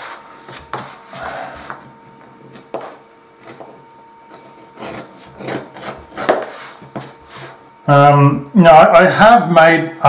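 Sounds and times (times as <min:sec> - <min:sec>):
edge beveler scraping leather: 0:04.3 - 0:07.6.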